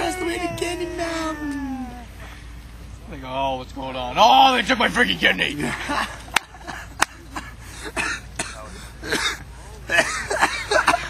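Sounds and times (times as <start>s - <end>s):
men laughing: 0.0s - 2.2s, 4.8s - 11.0s.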